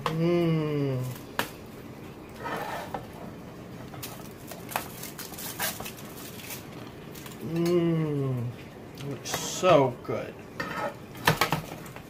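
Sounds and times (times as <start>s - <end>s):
person humming mmm: 0.0s - 1.2s, 7.4s - 8.6s
metal spatula scraping baking sheet: 2.4s - 3.0s, 10.6s - 11.0s.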